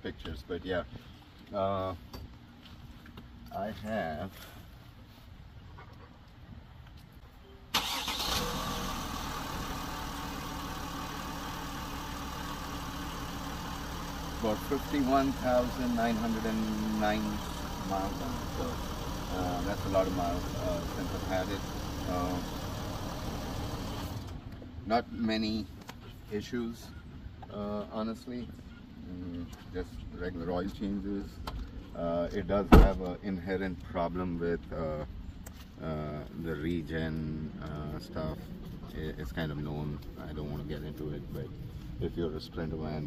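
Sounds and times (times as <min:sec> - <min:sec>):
diesel engine cranking and starting: 0:07.7 - 0:24.5
diesel engine idling: 0:07.8 - 0:24.4.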